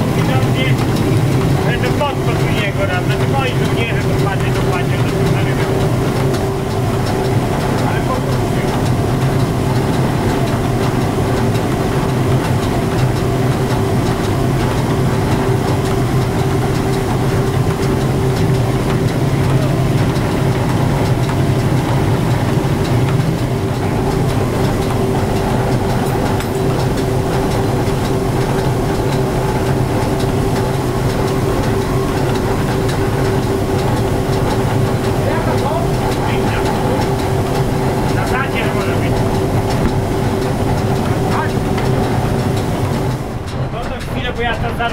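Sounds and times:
grain mill machinery droning: 0.0s - 44.9s.

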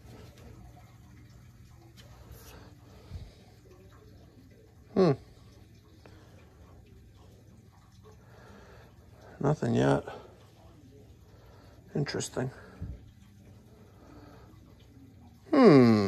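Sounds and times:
circulator pump humming: 0.0s - 16.0s
man murmuring: 4.9s - 5.3s, 15.5s - 16.0s.

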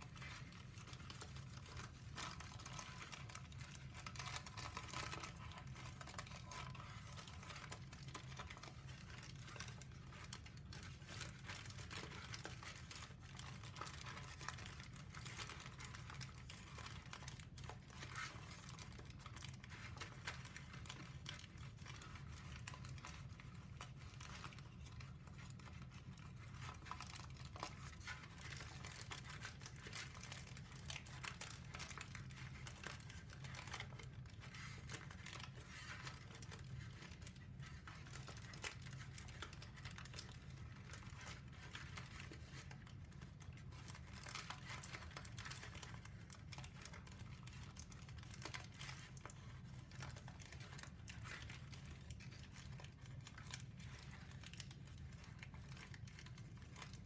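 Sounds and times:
paper crackling and crinkling: 0.0s - 57.0s.

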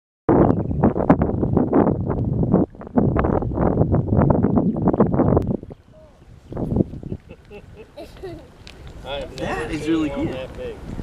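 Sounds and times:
wind buffeting microphone: 0.3s - 11.0s.

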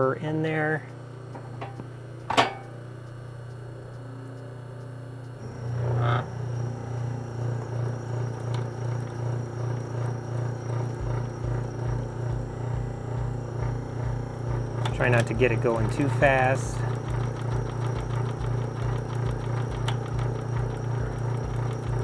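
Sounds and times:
sewing machine running: 5.4s - 22.0s.

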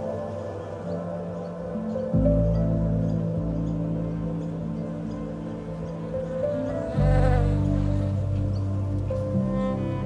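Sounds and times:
background music low notes: 0.0s - 10.0s
bees buzzing: 6.3s - 10.0s.

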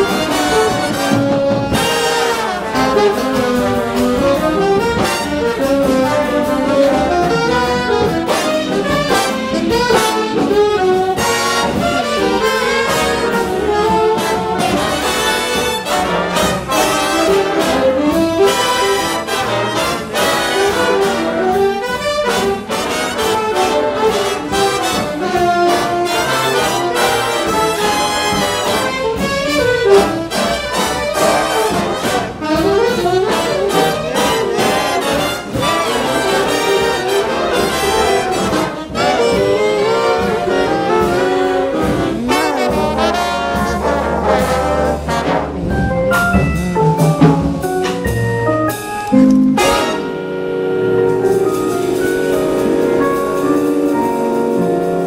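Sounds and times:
jazz big band playing: 0.0s - 55.0s
trumpets and trombones: 0.0s - 55.0s.

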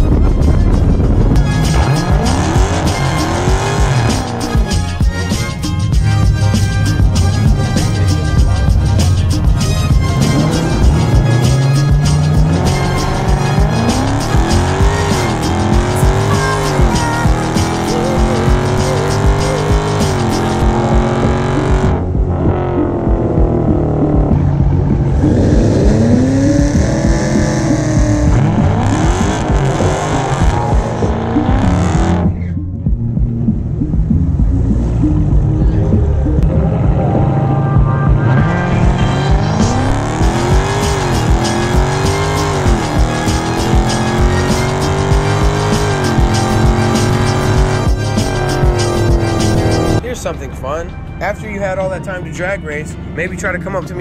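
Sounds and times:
car engine revving through gears: 0.0s - 5.6s, 6.4s - 32.6s, 33.2s - 50.0s
music playing: 0.0s - 54.0s.

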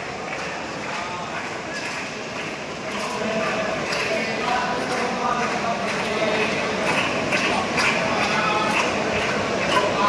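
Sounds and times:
many voices murmuring: 0.0s - 10.0s.

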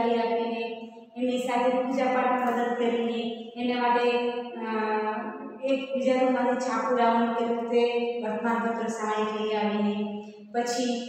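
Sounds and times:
woman chanting: 0.0s - 11.0s.

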